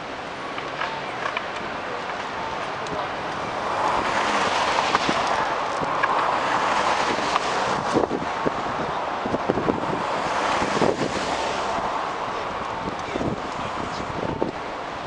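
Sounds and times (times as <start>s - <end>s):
hum of car traffic: 0.0s - 15.0s
wind buffeting microphone: 0.0s - 15.0s.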